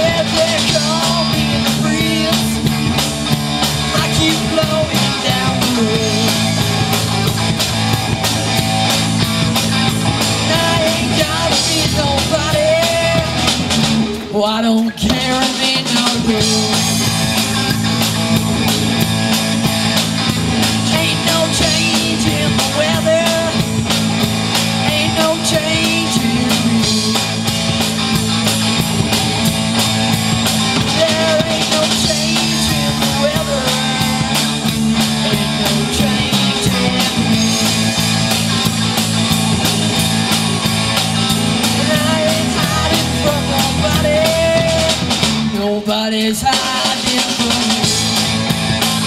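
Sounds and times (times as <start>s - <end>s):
drum kit steady beat: 0.0s - 49.0s
live rock band playing: 0.0s - 49.0s.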